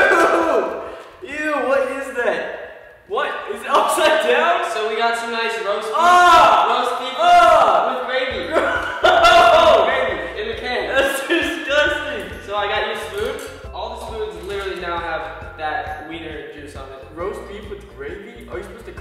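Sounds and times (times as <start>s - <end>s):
young men shouting and laughing: 0.0s - 13.2s
music: 0.0s - 19.0s.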